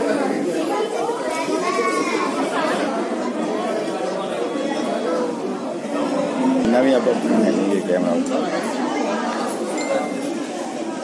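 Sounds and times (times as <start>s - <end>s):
chatter of people talking: 0.0s - 11.0s.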